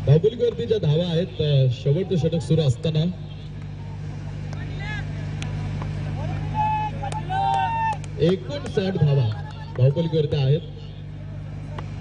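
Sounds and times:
steady low engine-like hum: 0.0 - 12.0
distant voices shouting: 3.4 - 12.0.

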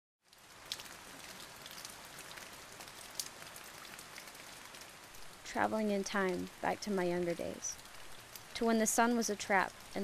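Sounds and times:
rain pattering on puddle: 0.2 - 10.0.

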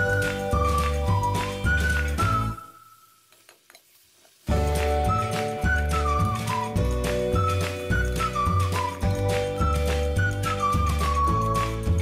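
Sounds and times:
background music: 0.0 - 3.2, 4.5 - 12.0
light sizzle: 1.8 - 6.6.

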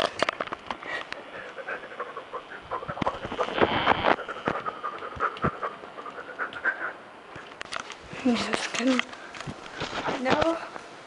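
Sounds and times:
dog panting: 1.2 - 3.6, 4.2 - 7.0.

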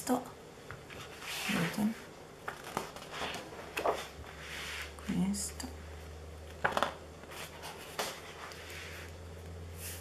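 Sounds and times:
paper sheets sliding and rustling: 1.0 - 1.9, 2.6 - 5.0.

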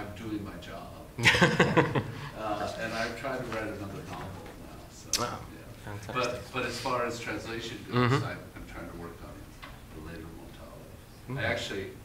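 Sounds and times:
man speaking softly: 2.3 - 12.0.

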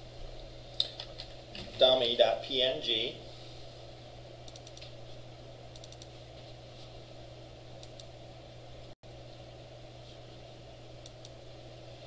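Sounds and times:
steady low hum: 0.0 - 12.0
keyboard and mouse clicks: 4.5 - 4.9, 5.8 - 6.1.

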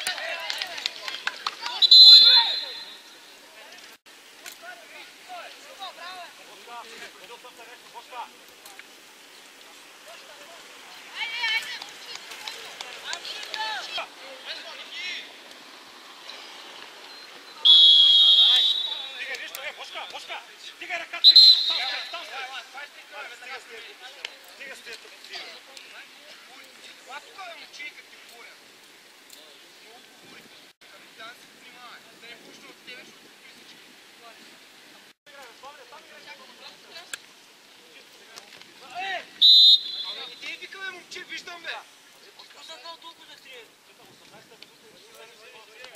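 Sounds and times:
man shouting: 1.8 - 2.9
referee's whistle blast: 1.8 - 3.2, 17.6 - 19.3, 21.2 - 22.3, 39.4 - 40.5.

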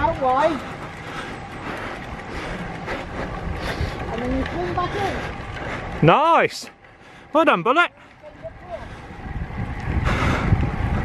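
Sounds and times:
wind buffeting microphone: 0.0 - 6.1, 8.1 - 11.0.

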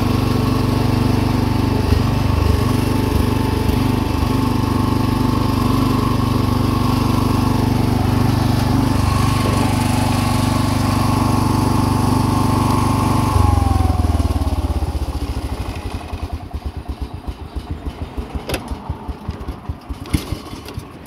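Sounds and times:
lawn tractor engine stalling: 0.0 - 21.0.

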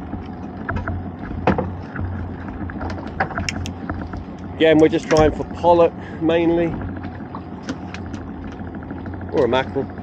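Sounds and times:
outboard motor idling: 0.0 - 10.0.

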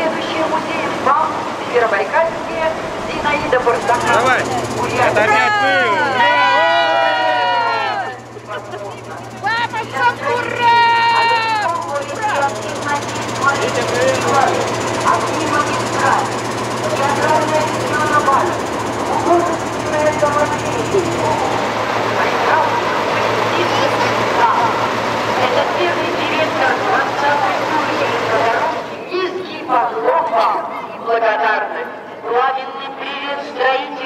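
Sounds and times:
steady low hum: 0.0 - 29.6
crowd talking: 0.0 - 34.0
long shouts: 4.4 - 8.4, 9.3 - 12.6.

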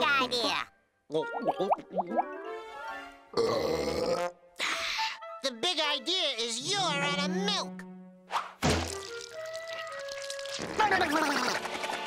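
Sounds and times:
quick swish: 8.3 - 8.6
hollow thunk: 8.6 - 9.0.

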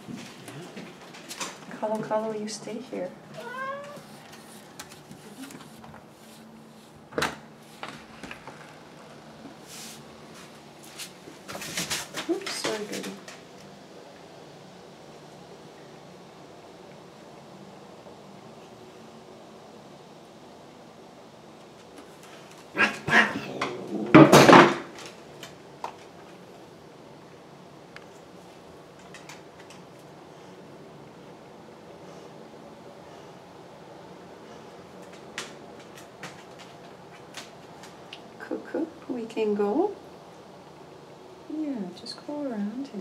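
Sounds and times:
cats scuffling on tile floor: 3.3 - 13.7, 34.4 - 38.2
cat meowing: 3.4 - 4.1.

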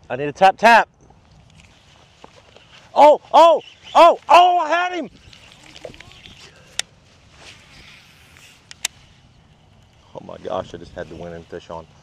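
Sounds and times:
faint rush of wind or water: 0.0 - 12.0.

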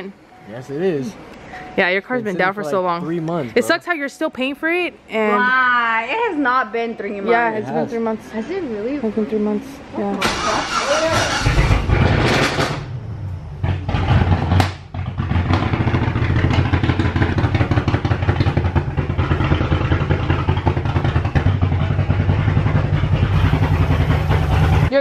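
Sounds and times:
car engine idling loudly: 10.3 - 24.9.

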